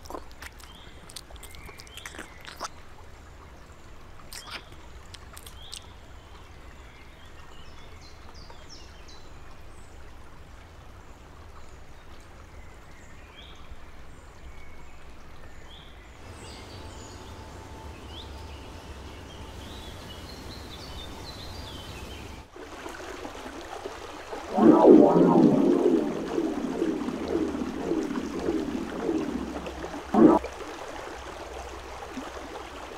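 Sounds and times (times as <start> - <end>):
running water rushing: 16.2 - 32.9.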